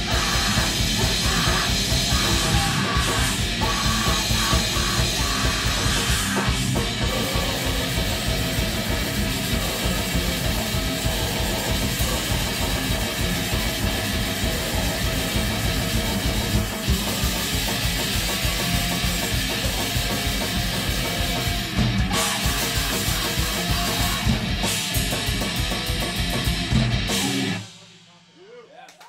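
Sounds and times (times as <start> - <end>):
rapid kick drum: 0.0 - 27.6
heavy metal band playing: 0.0 - 28.3.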